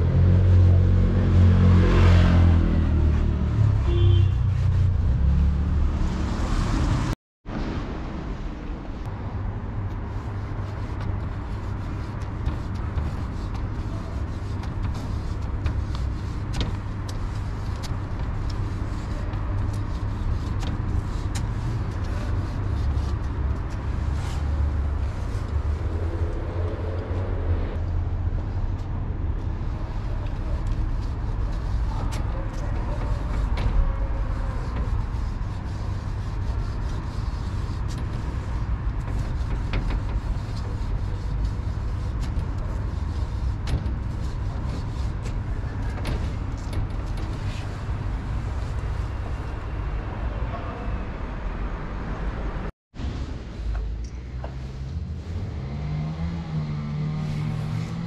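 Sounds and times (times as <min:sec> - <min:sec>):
road traffic rumble: 0:00.0 - 0:58.0.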